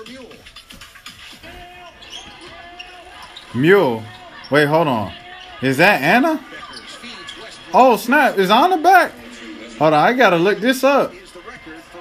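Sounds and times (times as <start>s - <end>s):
commentator speaking: 3.4s - 12.0s.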